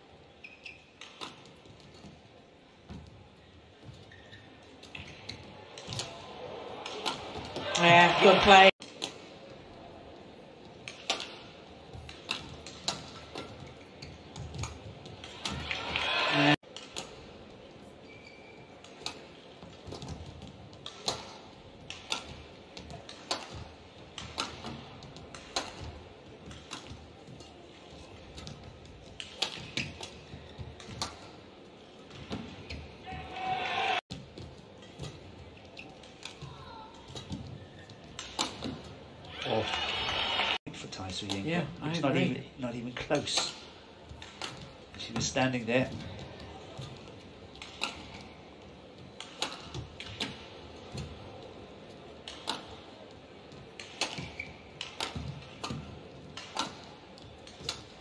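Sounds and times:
arena background noise: 0:00.0 - 0:58.0
rackets striking shuttlecock: 0:06.8 - 0:09.3, 0:10.8 - 0:11.4, 0:12.0 - 0:15.8, 0:19.8 - 0:27.5, 0:44.2 - 0:44.8, 0:46.8 - 0:48.4, 0:49.1 - 0:51.2, 0:52.2 - 0:52.8, 0:53.5 - 0:58.0
crowd noise swell: 0:39.4 - 0:40.6.

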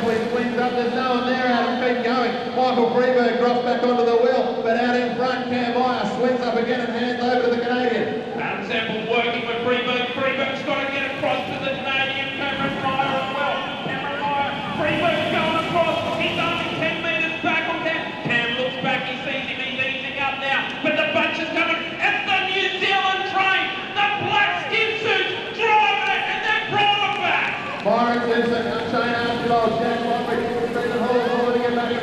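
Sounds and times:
race commentator talking: 0:00.0 - 0:32.0.

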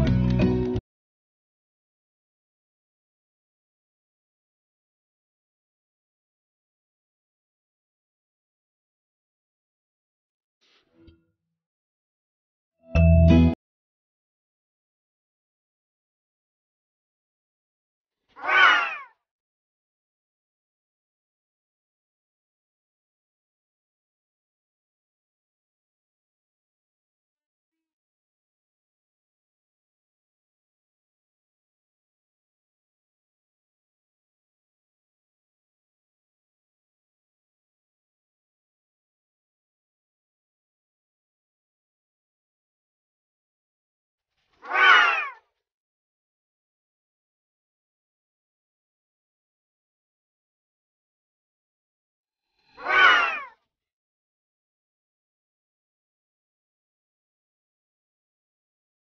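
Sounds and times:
cat meow: 0:18.4 - 0:19.2, 0:44.6 - 0:45.4, 0:52.7 - 0:53.6.

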